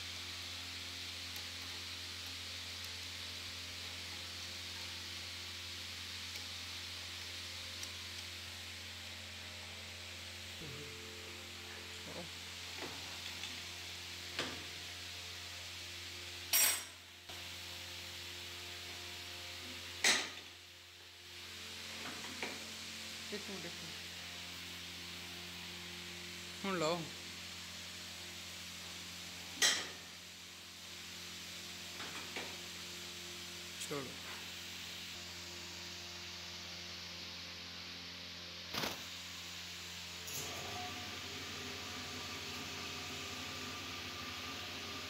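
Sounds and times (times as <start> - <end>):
workshop hum: 0.0 - 45.0.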